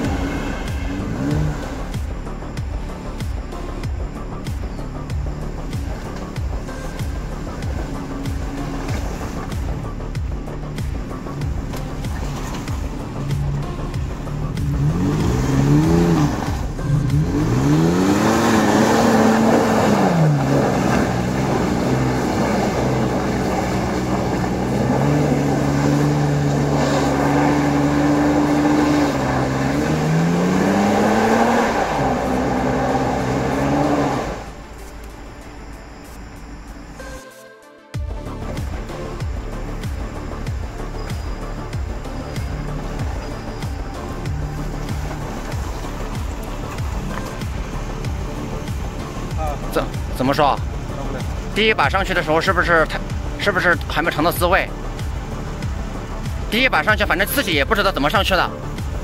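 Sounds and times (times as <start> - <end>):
engine revving hard: 0.0 - 2.0, 14.4 - 34.6.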